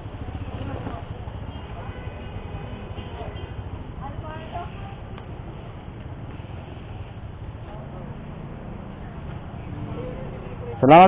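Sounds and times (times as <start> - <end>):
motor scooter engine idling: 0.0 - 10.7.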